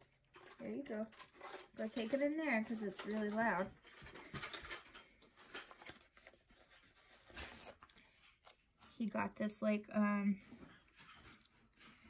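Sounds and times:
paper rustling: 0:01.2 - 0:09.1.

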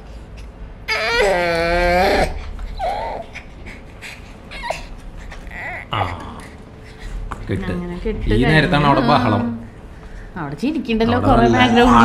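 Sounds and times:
young child whimpering: 0:00.9 - 0:06.6.

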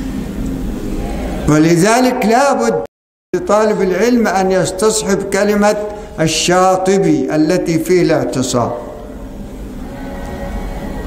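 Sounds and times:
low steady rumble: 0:00.0 - 0:02.4
faint hum: 0:00.0 - 0:11.0.

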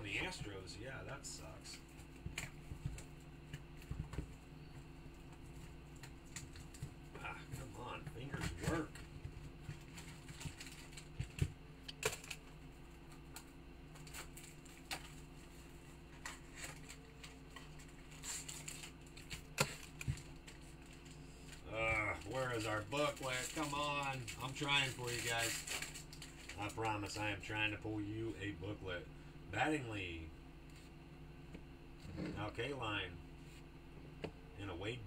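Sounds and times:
steady low hum: 0:00.0 - 0:35.0
foil wrapping crinkling: 0:09.6 - 0:11.4, 0:16.1 - 0:27.3.

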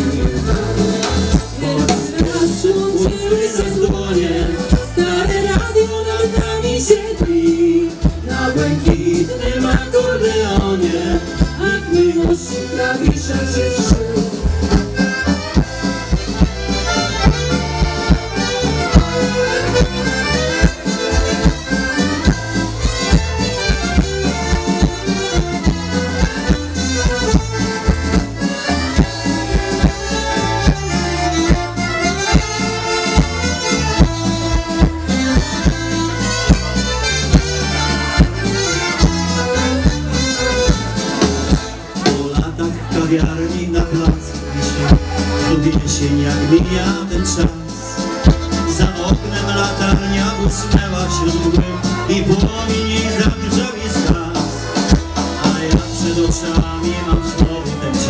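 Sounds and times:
accordion: 0:00.0 - 0:58.0
folk band playing a waltz: 0:00.0 - 0:58.0
steady bass beat: 0:00.0 - 0:58.0.

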